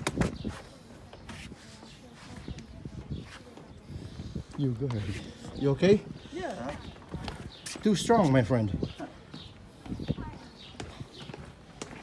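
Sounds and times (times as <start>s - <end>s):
footsteps: 0.0s - 12.0s.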